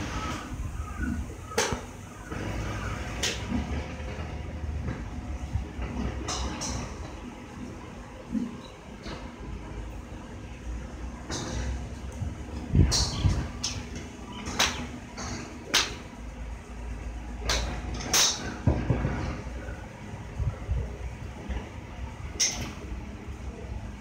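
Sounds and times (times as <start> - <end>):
golf clubs striking balls: 1.4 - 7.3, 11.0 - 19.8, 22.3 - 22.9
steady low rumble: 2.9 - 17.9.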